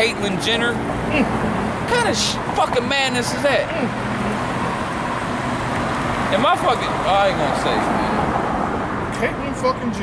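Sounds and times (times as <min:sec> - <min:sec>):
street traffic passing cars: 0:00.0 - 0:10.0.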